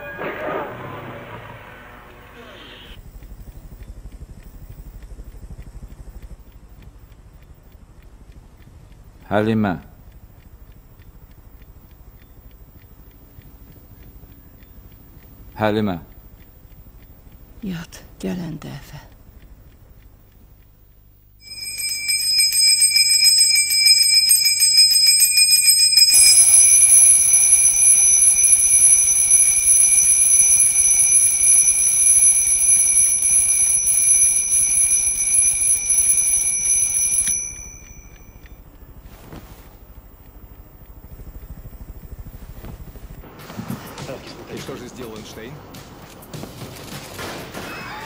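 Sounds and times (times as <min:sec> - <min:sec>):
alarm clock bells ringing: 0:00.0 - 0:02.0, 0:21.4 - 0:38.5.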